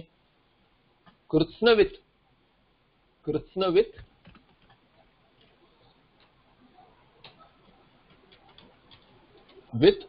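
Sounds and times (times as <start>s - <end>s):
keyboard keys typing: 4.0s - 9.7s.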